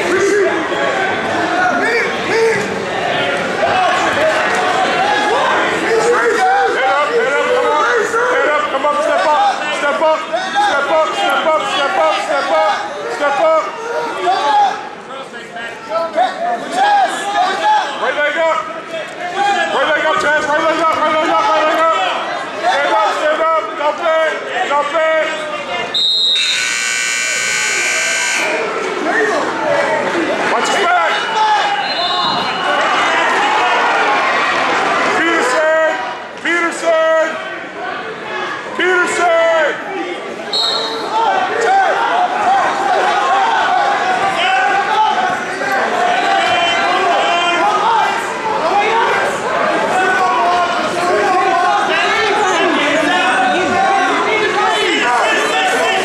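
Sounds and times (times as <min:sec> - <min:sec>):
crowd shouting: 0:00.0 - 0:56.0
scoreboard buzzer: 0:26.2 - 0:28.7.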